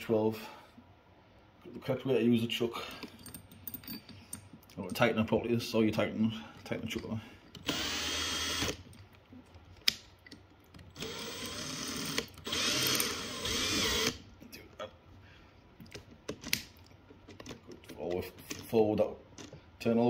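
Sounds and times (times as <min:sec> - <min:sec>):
cordless drill motor running: 0:07.6 - 0:08.8, 0:10.9 - 0:14.2.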